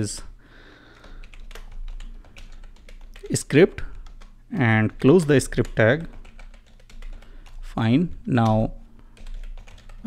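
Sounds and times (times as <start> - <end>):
keyboard typing: 0.9 - 7.6, 8.2 - 10.0.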